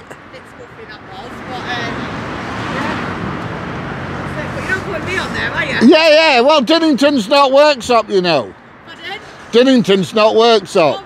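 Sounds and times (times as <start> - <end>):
road vehicle passing by: 0.0 - 11.0.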